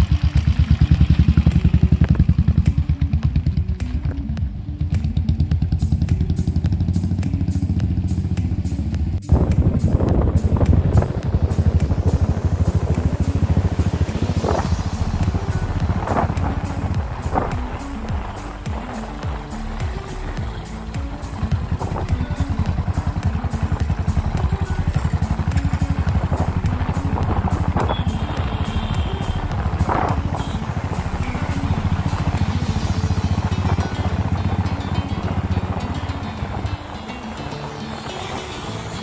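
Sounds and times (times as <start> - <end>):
background music: 0.0 - 39.0
motorcycle engine running: 0.0 - 39.0.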